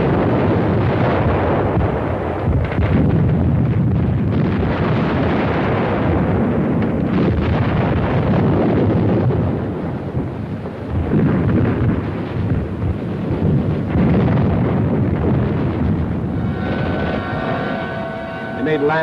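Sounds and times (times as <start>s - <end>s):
battle explosions and gunfire: 0.0s - 19.0s
steady tones: 15.7s - 19.0s.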